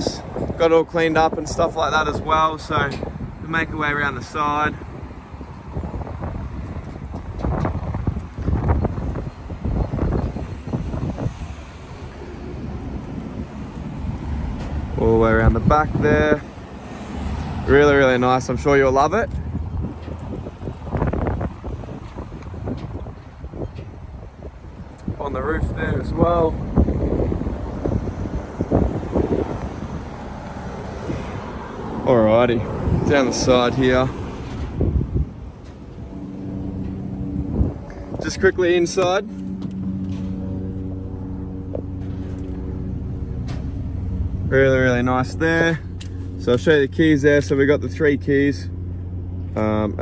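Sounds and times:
wind buffeting microphone: 0.0 - 50.0.

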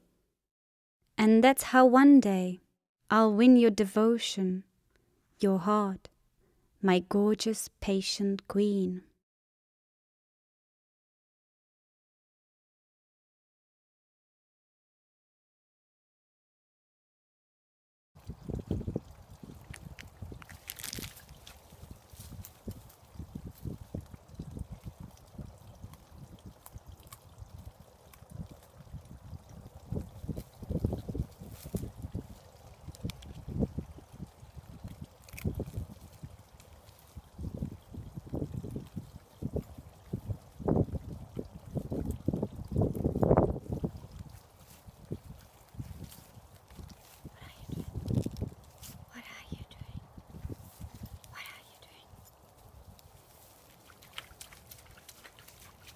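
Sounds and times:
wind buffeting microphone: 18.2 - 49.1, 50.0 - 51.3
rustling through grass: 19.7 - 23.8, 44.2 - 49.1, 52.3 - 55.9.

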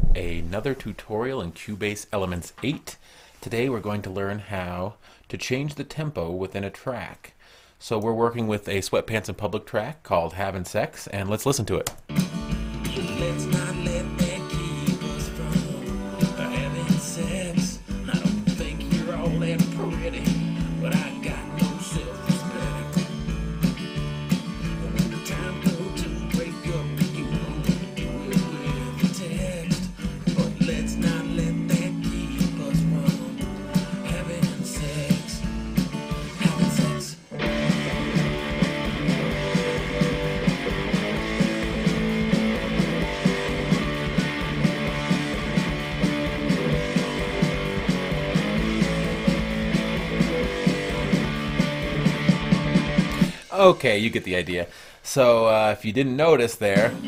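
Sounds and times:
rock song with drums and guitars: 12.0 - 53.8.

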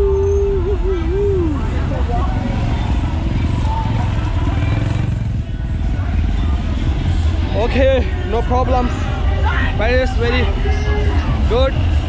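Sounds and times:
faint voices: 0.0 - 12.0
traffic engines rumbling: 0.0 - 12.0.

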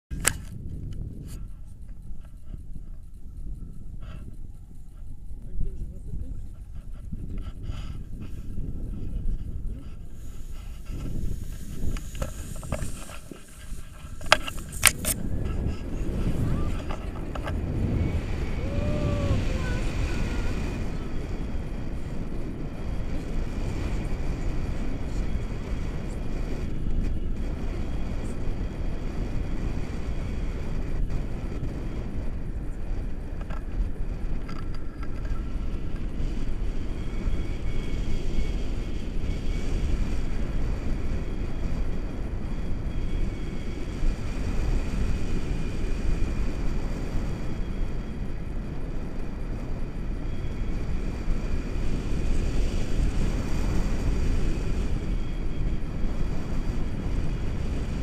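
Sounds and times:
wind rushing over microphone: 0.0 - 58.0.

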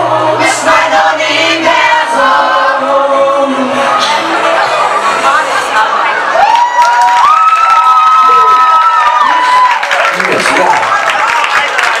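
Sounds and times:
audience cheering and clapping: 6.2 - 12.0
long high held shouts: 6.4 - 9.8.

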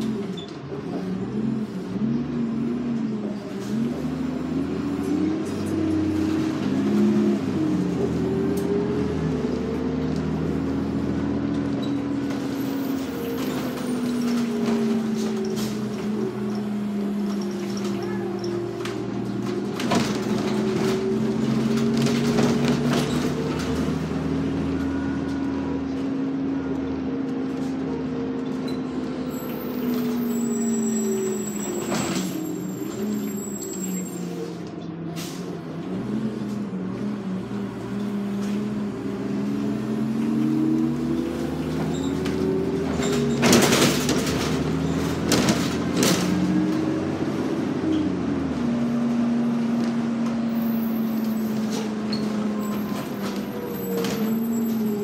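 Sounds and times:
bus engine droning: 0.0 - 55.0
bus body rattling: 2.8 - 39.1, 39.7 - 55.0.

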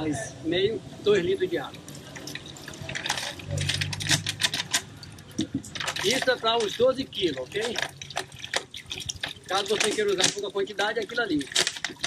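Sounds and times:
plastic bottle glugging and crackling: 1.6 - 12.0
water pouring into metal bucket: 1.6 - 12.0.

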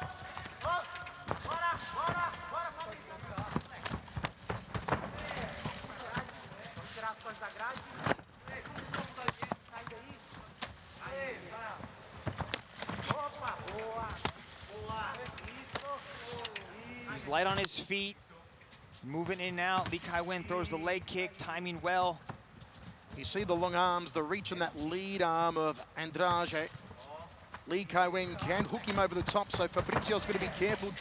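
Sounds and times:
thumps and slaps of bodies: 3.3 - 6.4, 12.2 - 15.0.

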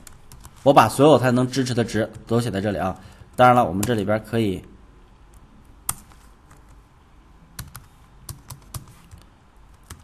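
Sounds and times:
keyboard keystrokes: 7.6 - 10.0.

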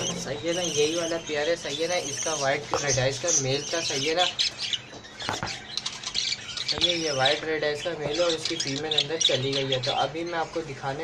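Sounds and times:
budgerigars chirping and squawking: 0.0 - 11.0.

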